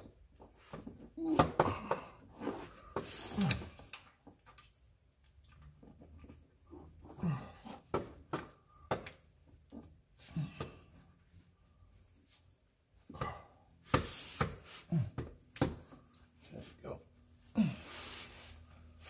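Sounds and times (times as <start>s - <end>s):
person grunting: 1.2s - 2.2s, 17.6s - 18.0s.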